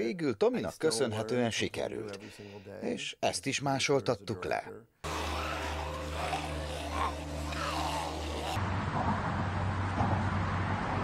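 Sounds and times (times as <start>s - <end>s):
faint wavering sounds: 5.0s - 8.6s
low soundtrack drone: 5.0s - 10.9s.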